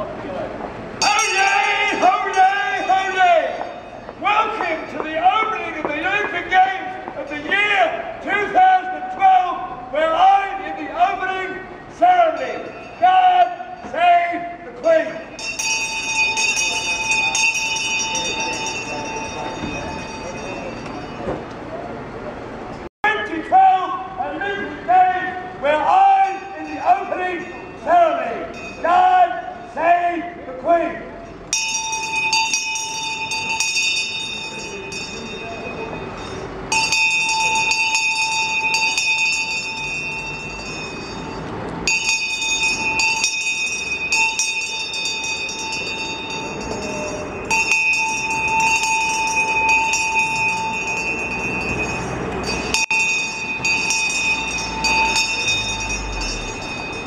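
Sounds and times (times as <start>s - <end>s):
brass handbell clanging: 1.0s - 5.7s, 12.3s - 21.3s, 26.2s - 29.8s, 31.4s - 57.0s.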